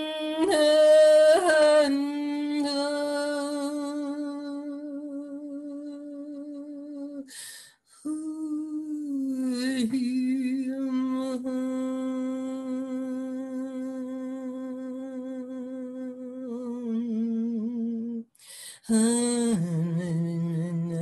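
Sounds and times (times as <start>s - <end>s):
quick breath in: 7.3s - 7.8s, 18.4s - 18.9s
woman humming: 8.0s - 18.2s.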